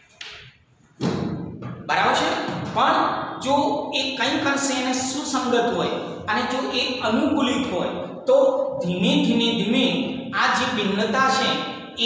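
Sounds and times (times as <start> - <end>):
thud: 1.0 - 2.8.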